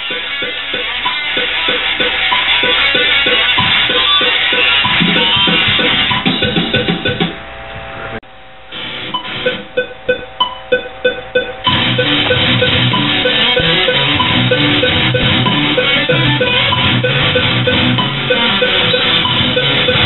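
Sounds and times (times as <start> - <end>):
electric guitar metal riff: 0.0 - 7.3, 11.6 - 20.0.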